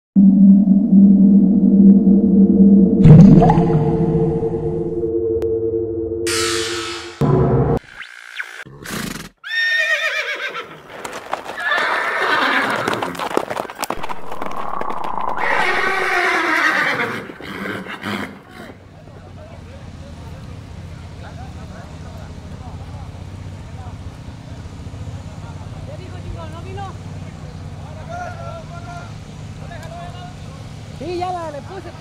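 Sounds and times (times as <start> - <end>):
sustained droning chord: 0.2 - 3.1, 3.8 - 7.8
horse whinnies: 8.7 - 10.8, 11.6 - 13.2, 14.4 - 18.8
whooshes: 14.0 - 16.1.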